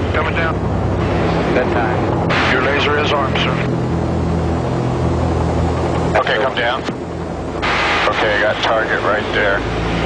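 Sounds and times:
helicopter engines and rotor drone: 0.0 - 10.0.

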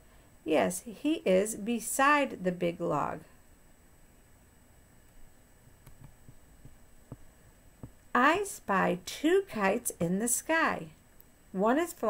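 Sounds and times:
faint room hum: 0.0 - 12.0
soft low taps: 5.7 - 8.0.

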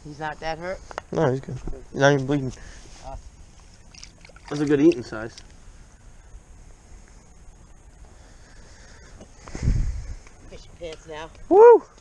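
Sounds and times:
wind rumble: 9.4 - 10.8.

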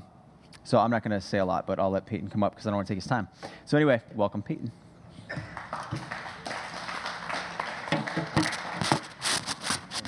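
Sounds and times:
audience applauding: 5.3 - 9.2.

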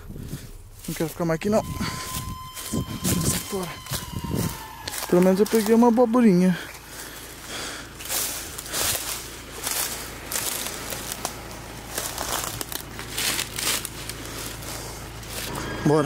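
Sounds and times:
footsteps crunching through dry leaves: 0.0 - 15.8.

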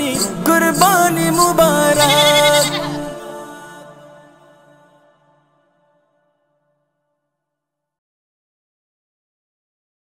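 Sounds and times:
backing music: 0.0 - 5.4
man singing a quavering note: 0.0 - 6.5.

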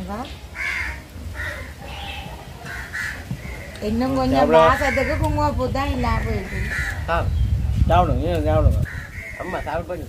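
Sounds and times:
crow cawing: 0.6 - 7.2, 8.9 - 10.0.

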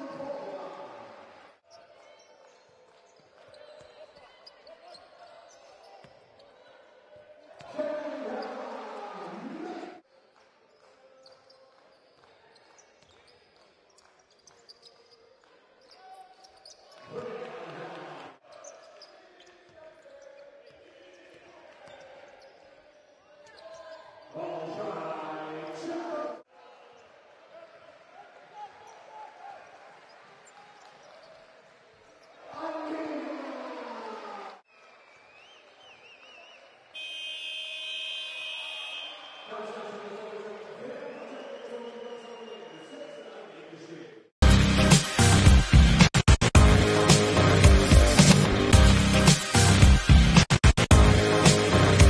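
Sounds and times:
players' voices: 0.0 - 10.1
sneaker squeaks on hardwood: 11.2 - 17.1.

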